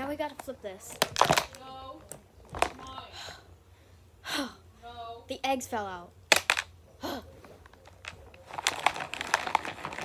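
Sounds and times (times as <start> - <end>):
child's wordless voice: 0.0 - 1.0
plastic container clattering: 0.9 - 1.6, 7.8 - 10.0
objects falling out knock: 6.3 - 6.7.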